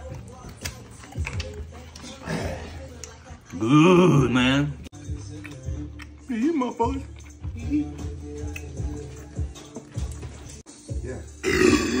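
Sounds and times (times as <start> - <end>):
man belching: 11.4 - 12.0.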